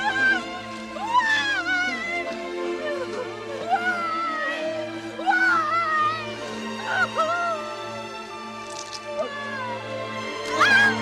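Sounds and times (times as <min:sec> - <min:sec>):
young woman screaming and wailing: 0:00.0 - 0:08.2, 0:09.1 - 0:11.0
dramatic film score: 0:00.0 - 0:11.0.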